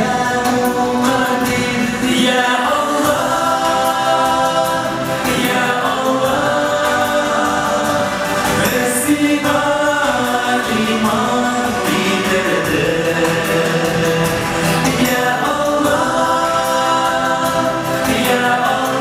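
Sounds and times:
two men singing over pa: 0:00.0 - 0:19.0.

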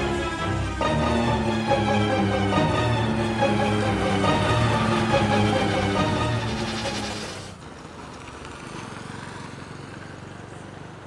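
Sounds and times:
background music sustained notes: 0:00.0 - 0:07.5.

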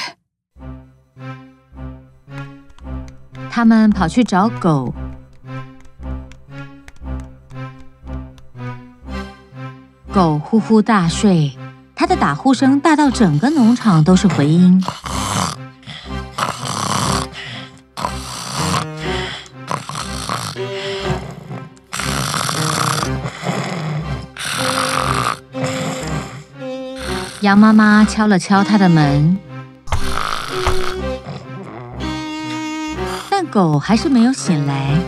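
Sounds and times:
background music: 0:00.5 - 0:35.0
cartoon dog snoring: 0:13.2 - 0:29.2, 0:29.9 - 0:33.5.

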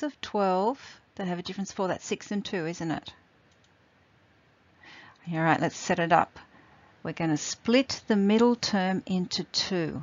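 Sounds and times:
faint click: 0:03.5 - 0:03.8.

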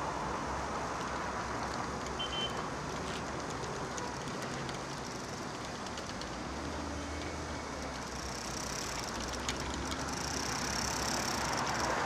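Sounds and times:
road traffic noise: 0:00.0 - 0:12.0
faint high ticks: 0:00.9 - 0:12.0.

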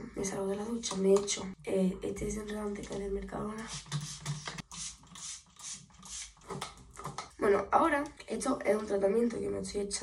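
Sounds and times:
spray bottle hissing sprays: 0:03.6 - 0:06.5.

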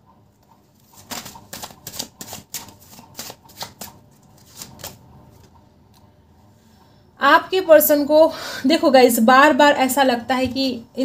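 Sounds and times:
cards being shuffled: 0:00.8 - 0:05.5.

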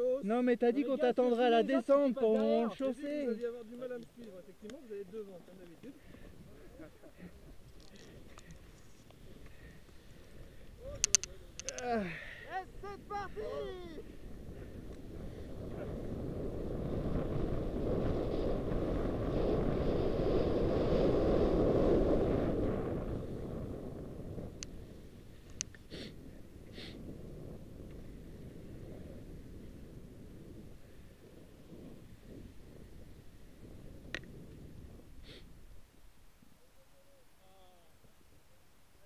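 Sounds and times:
wind rushing over microphone: 0:06.0 - 0:36.0
short clicks: 0:10.9 - 0:11.9
skis hissing on snow: 0:17.6 - 0:23.7, 0:25.9 - 0:27.0, 0:35.2 - 0:35.5.

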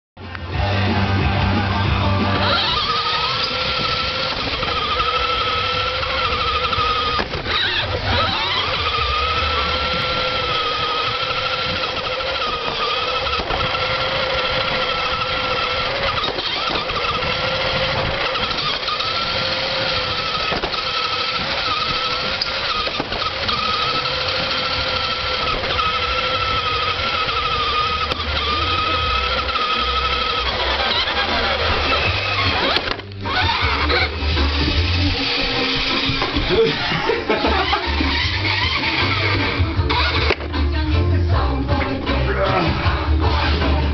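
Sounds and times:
model car motor whining: 0:00.3 - 0:43.9.

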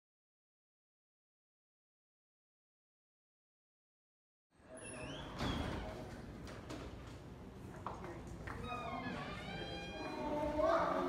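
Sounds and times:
indoor room noise: 0:04.5 - 0:11.0
faint voices: 0:07.6 - 0:11.0.

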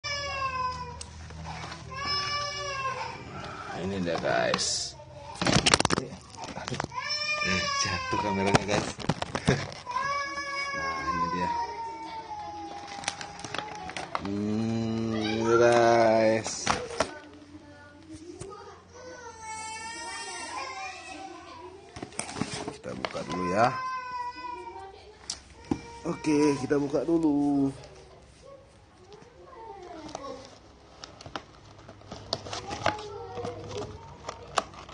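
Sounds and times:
plastic packaging crackling: 0:03.4 - 0:10.6, 0:12.3 - 0:17.8, 0:29.1 - 0:34.9
plastic packaging clicks: 0:05.4 - 0:07.0, 0:08.4 - 0:09.9, 0:12.8 - 0:14.4, 0:30.9 - 0:34.9.

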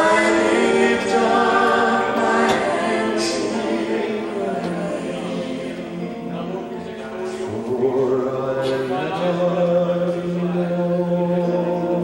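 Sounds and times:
group singing worship chorus: 0:00.0 - 0:06.3.

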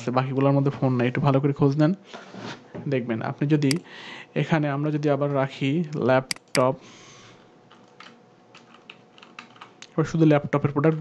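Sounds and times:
faint keyboard typing: 0:06.3 - 0:06.7, 0:07.7 - 0:10.0, 0:10.6 - 0:11.0.

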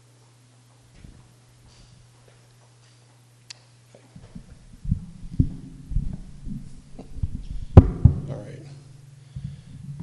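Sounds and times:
electrical hum: 0:00.0 - 0:10.0
microphone thumps and knocks: 0:04.2 - 0:08.4, 0:09.3 - 0:10.0.

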